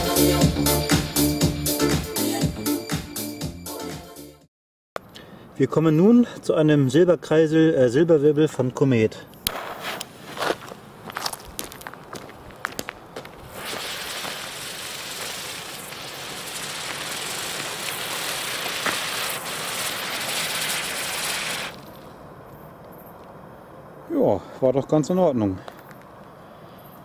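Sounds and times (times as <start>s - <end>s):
firework spinner loud hiss: 9.5s - 10.4s, 13.4s - 22.1s
fuse crackling and spitting: 13.4s - 22.1s.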